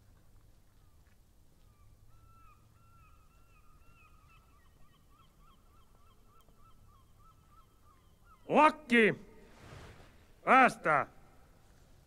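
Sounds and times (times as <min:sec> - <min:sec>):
distant bird calling: 0:00.7 - 0:11.6.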